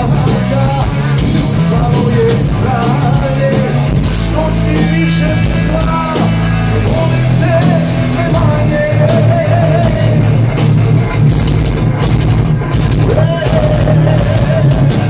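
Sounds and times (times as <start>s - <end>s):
person singing: 0.0s - 10.2s, 13.0s - 15.0s
rock band playing live: 0.0s - 15.0s.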